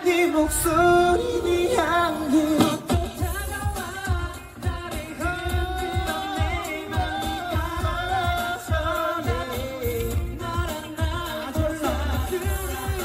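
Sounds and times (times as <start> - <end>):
man singing into a microphone: 0.0 - 13.0
pop backing track with heavy beat: 0.0 - 13.0.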